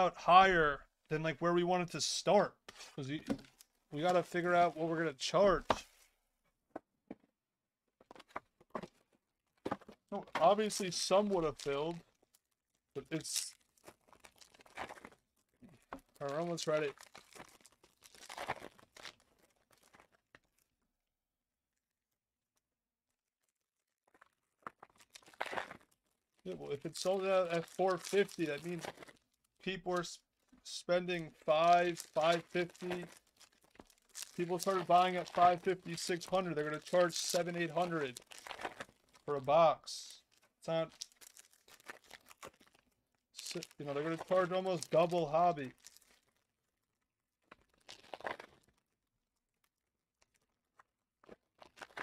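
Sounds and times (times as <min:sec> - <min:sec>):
plastic wrapping tearing and crinkling: 0:09.8 - 0:20.7, 0:23.3 - 0:39.5, 0:40.2 - 0:52.0.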